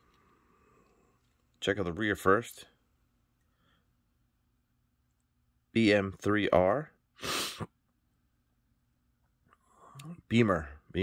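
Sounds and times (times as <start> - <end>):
person exhaling sharply: 7.2 - 7.7.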